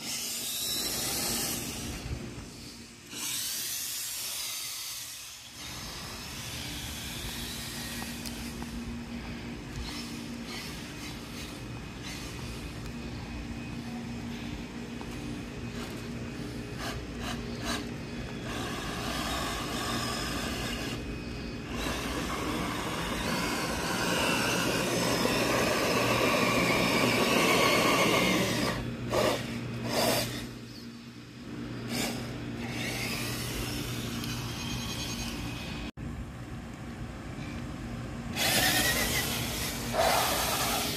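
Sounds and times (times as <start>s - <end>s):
toy car electric motor whining: 0.0s - 8.7s, 9.7s - 12.9s, 16.7s - 30.8s, 31.9s - 35.8s, 38.3s - 40.9s.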